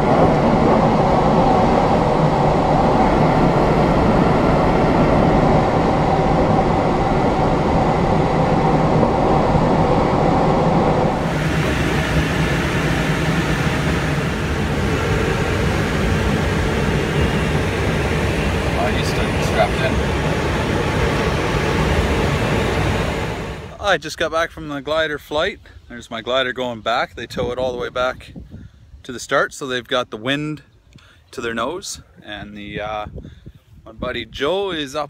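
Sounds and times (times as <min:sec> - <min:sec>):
hissy steady noise: 0:00.0 - 0:24.2
rushing airflow noise: 0:00.0 - 0:24.6.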